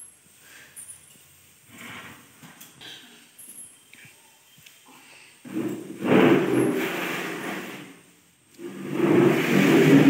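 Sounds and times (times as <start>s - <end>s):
plastic chair scraping on floor: 1.7s - 2.6s, 5.4s - 10.0s.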